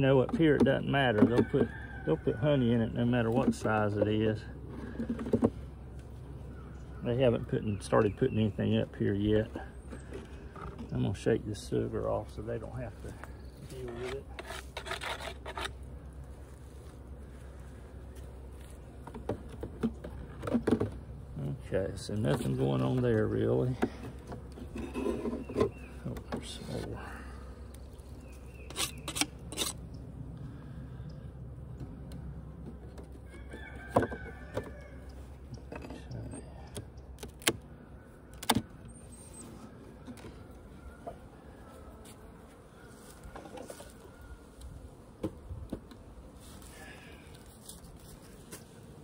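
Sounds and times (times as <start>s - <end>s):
rooster crowing: 1.4s - 2.6s, 33.2s - 35.2s, 40.6s - 42.1s.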